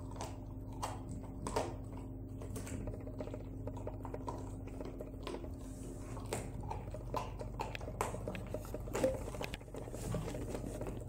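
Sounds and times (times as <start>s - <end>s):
dog gnawing bone: 0.0s - 11.0s.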